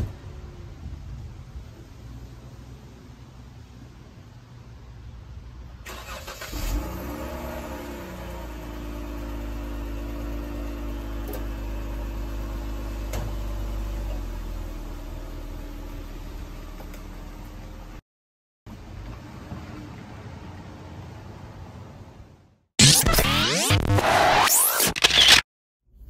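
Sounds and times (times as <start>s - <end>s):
car engine starting and idling: 5.8s - 18.0s.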